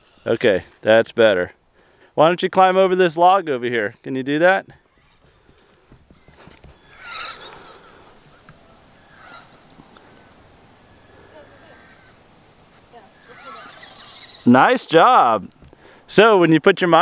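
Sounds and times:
small electric motor whining: 0:00.0 - 0:00.3, 0:06.2 - 0:14.5.

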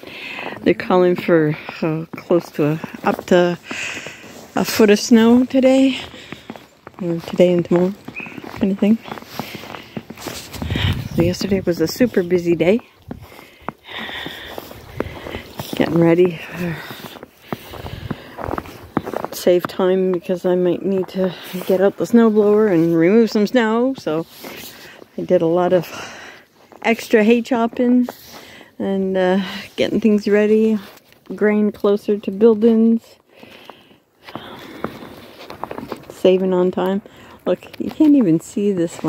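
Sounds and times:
footsteps in snow: 0:00.0 - 0:32.7, 0:33.4 - 0:39.0.

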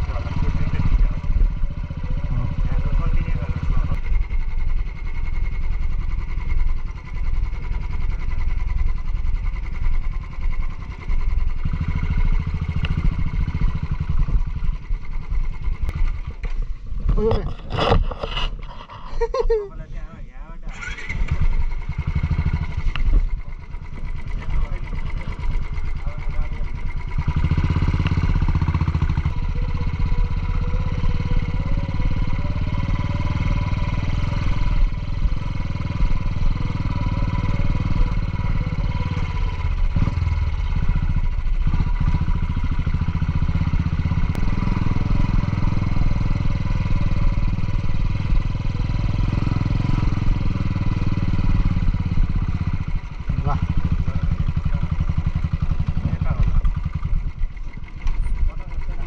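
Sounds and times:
motorcycle engine running: 0:00.0 - 0:59.0.

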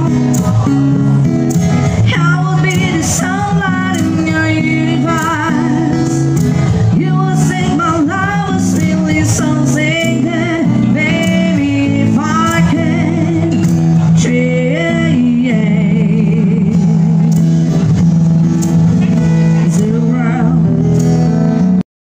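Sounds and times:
person singing with vibrato: 0:00.0 - 0:17.5, 0:19.5 - 0:21.1
acoustic guitar: 0:00.0 - 0:21.9.

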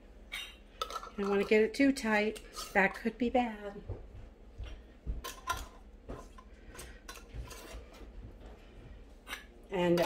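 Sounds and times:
metal lids scraping on glass jars: 0:00.3 - 0:01.6, 0:02.4 - 0:03.1, 0:06.8 - 0:08.0.

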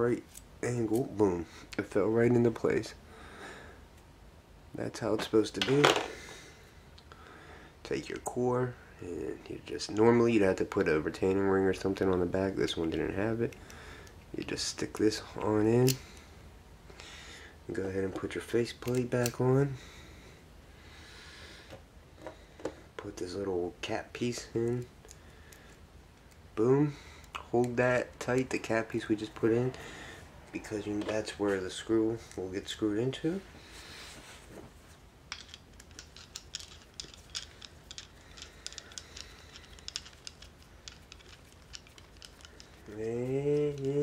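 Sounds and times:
low hiss: 0:00.0 - 0:44.0
faint clicks of metal padlock parts: 0:35.3 - 0:44.0.

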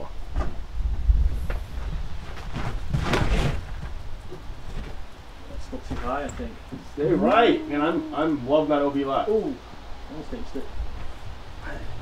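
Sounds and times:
wind buffeting microphone: 0:00.5 - 0:12.0
gust of rushing wind: 0:00.7 - 0:02.2.

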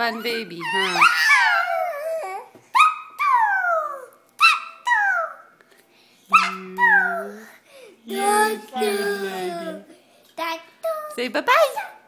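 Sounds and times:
baby squealing: 0:00.2 - 0:05.5.

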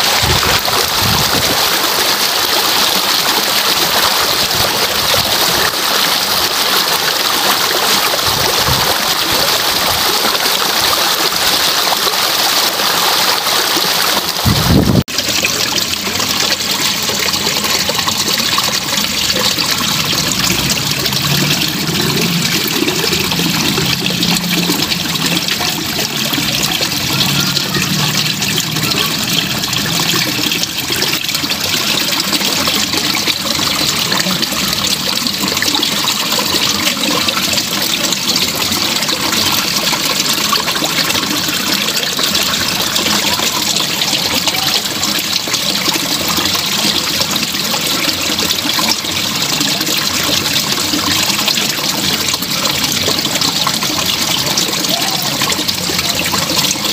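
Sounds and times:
water trickling over stones: 0:00.0 - 0:56.9.

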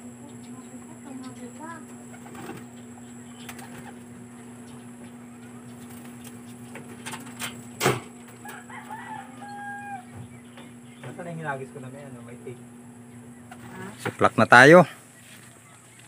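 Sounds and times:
birds calling: 0:00.0 - 0:16.0
steady low hum: 0:00.0 - 0:16.0
rooster crowing: 0:08.3 - 0:10.2.

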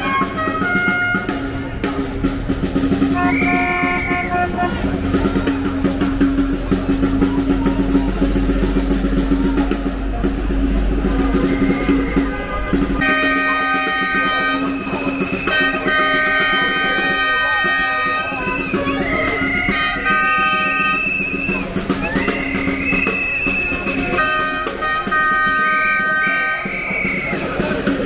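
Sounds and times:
horn-like tones: 0:00.0 - 0:02.1, 0:02.8 - 0:06.2, 0:09.3 - 0:28.0
idling engine rumble: 0:01.4 - 0:13.3.

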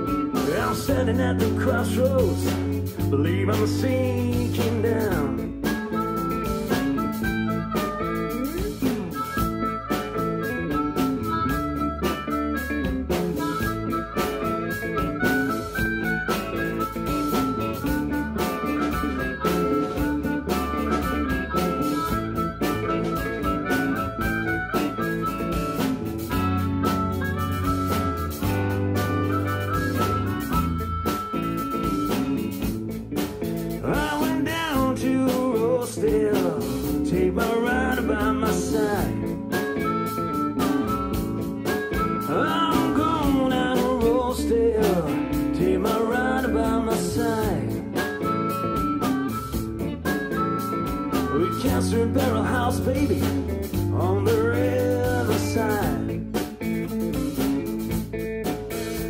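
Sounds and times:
blues-rock band playing: 0:00.0 - 0:59.0
harmonica: 0:00.0 - 0:59.0.

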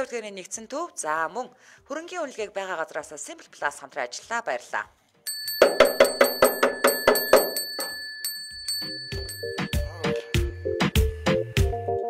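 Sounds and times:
bell-like chime ringing: 0:05.3 - 0:11.4
music: 0:05.6 - 0:12.0.

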